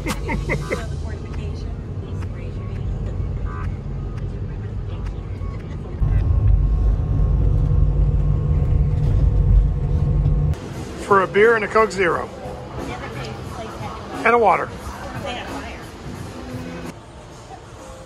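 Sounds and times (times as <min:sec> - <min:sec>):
vehicle road and engine rumble: 0:00.0 - 0:18.0.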